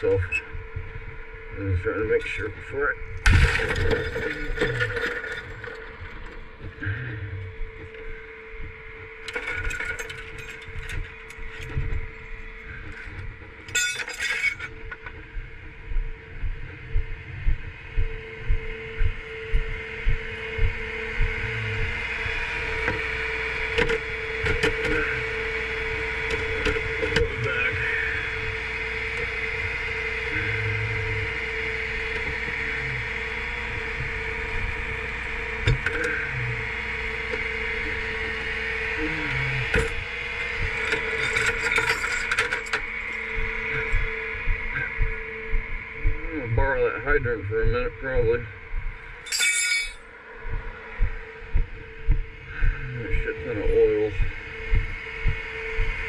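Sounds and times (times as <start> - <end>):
metal chains clinking: 40.8 - 42.8, 49.3 - 50.0.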